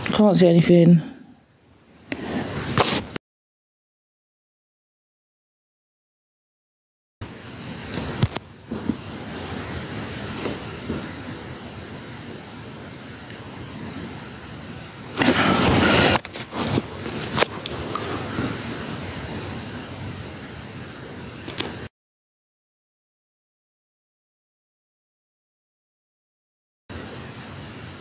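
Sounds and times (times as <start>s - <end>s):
microphone hiss: 0.0s - 3.2s, 7.2s - 21.9s, 26.9s - 28.0s
loud rush of noise: 7.2s - 21.9s.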